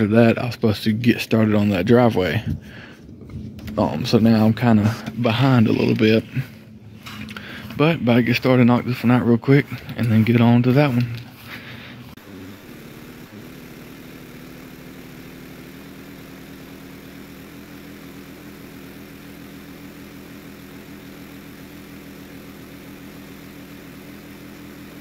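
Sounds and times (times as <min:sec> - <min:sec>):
pressure washer engine running: 0:03.6 - 0:25.0
surface cleaner on wet concrete: 0:09.4 - 0:25.0.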